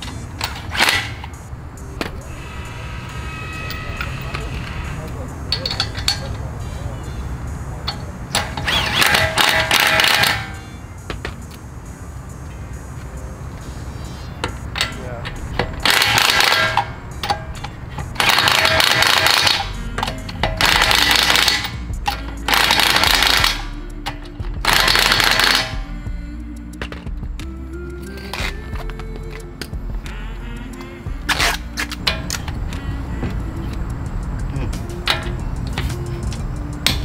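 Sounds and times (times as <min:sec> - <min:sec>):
impact wrench hammering lug nuts: 0:00.0 - 0:02.4, 0:03.2 - 0:06.4, 0:07.8 - 0:11.4, 0:14.4 - 0:25.9, 0:35.0 - 0:37.0.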